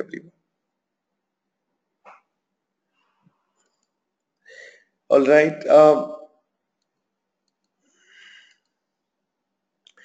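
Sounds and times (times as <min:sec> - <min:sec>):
soft breath: 0:04.4 - 0:04.9, 0:07.8 - 0:08.7.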